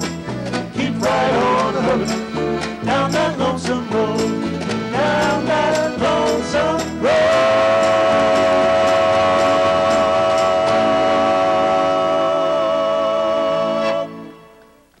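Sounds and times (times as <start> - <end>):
acoustic band holding final chord: 5.5 - 14.7.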